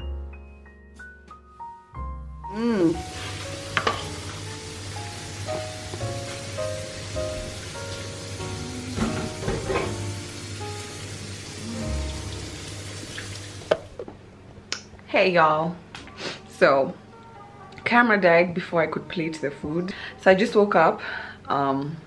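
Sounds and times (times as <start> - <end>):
background music simple melody: 0.0 - 13.6, 15.1 - 22.0
meat sizzling in a frying pan: 3.0 - 13.7.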